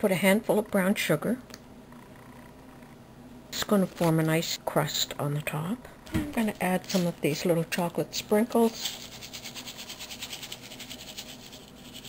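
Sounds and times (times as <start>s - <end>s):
sprinkles rattling in plastic container: 8.6s - 12.0s.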